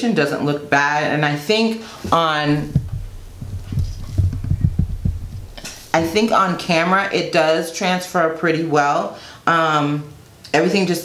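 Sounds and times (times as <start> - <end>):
soft dull low thumps: 2.1 - 6.9.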